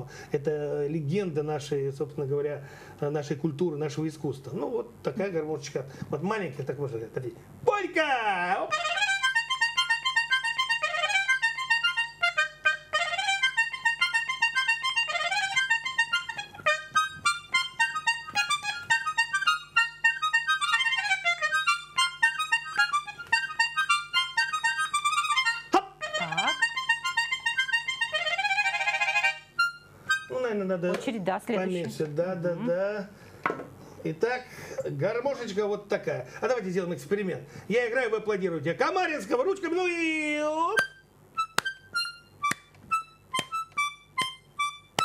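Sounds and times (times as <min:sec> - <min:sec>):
small button accordion tune: 0:08.7 - 0:31.7, 0:40.8 - 0:45.0.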